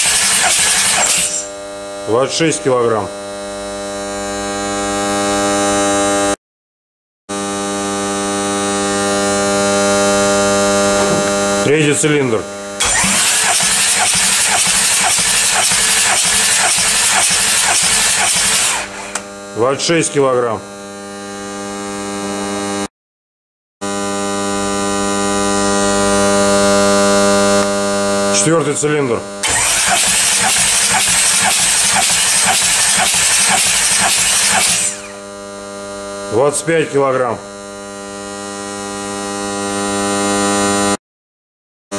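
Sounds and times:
engine cranking on starter motor: 0.0 - 1.5, 12.8 - 19.3, 29.4 - 35.2.

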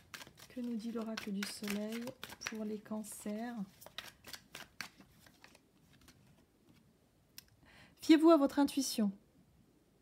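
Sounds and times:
cards flicking and rustling: 0.0 - 6.3.

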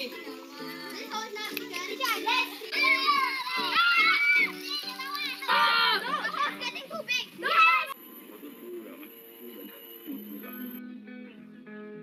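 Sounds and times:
background music with held notes: 0.0 - 6.9, 10.0 - 12.0
children shouting at play: 0.0 - 8.0.

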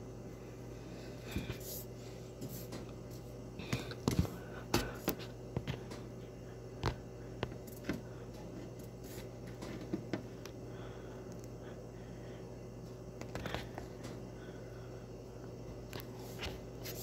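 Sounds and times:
oven humming: 0.0 - 17.0.

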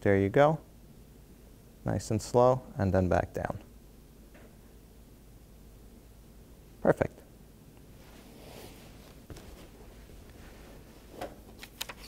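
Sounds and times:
cloth towel rustling: 7.9 - 11.6.

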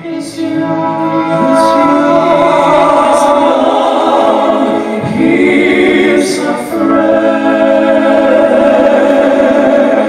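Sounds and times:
men singing in close harmony: 0.0 - 10.0.

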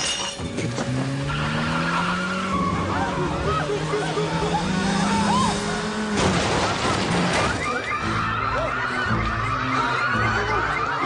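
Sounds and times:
car engine revving: 0.4 - 7.4.

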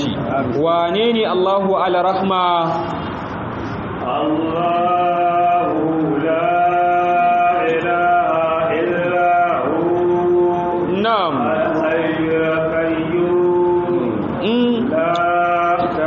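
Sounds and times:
man chanting melodically: 0.0 - 3.3, 4.0 - 16.0.

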